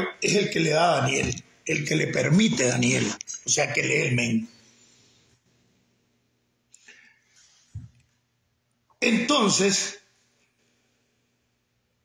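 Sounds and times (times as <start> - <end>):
mouth clicks: 3.0 - 3.5
breath sounds: 6.7 - 7.8.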